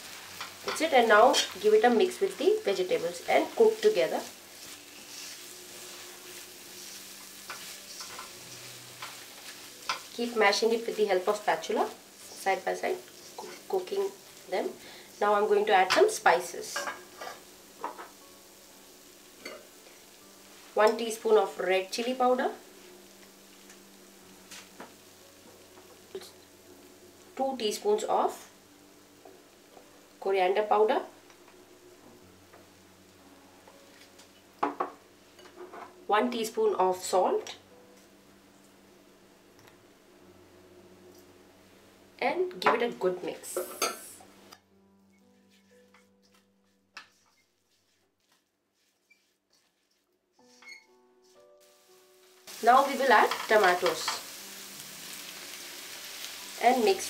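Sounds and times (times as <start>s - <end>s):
vegetables frying in a pan: 0.0s - 37.6s, 42.2s - 44.3s, 51.2s - 57.0s
faint soft background music: 0.0s - 57.0s.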